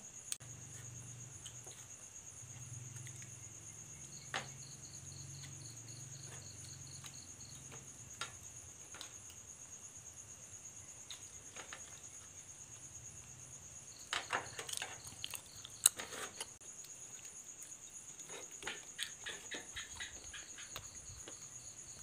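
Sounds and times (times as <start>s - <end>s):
cricket trill: 0.0s - 22.0s
insect chirping: 0.0s - 22.0s.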